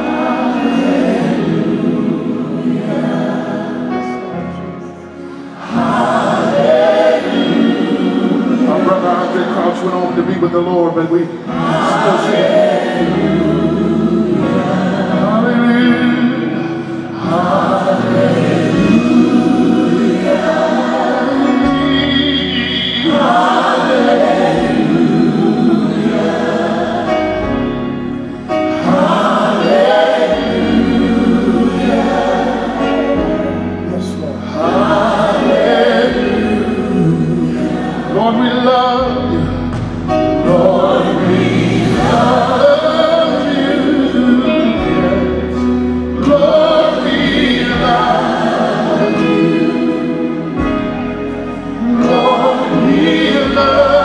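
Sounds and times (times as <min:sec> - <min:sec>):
backing music: 0:00.0 - 0:54.0
choir singing gospel: 0:00.0 - 0:54.0.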